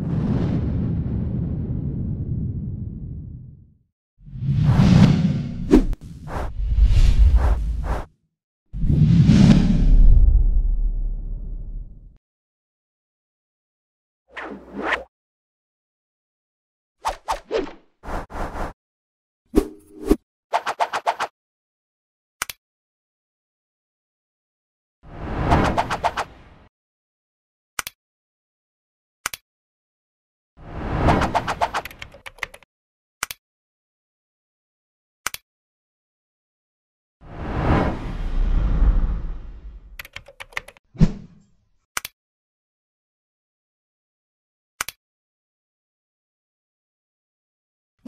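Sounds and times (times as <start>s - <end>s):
low whoosh: 37.4s - 40.0s
keyboard typing clicks: 40.0s - 40.8s.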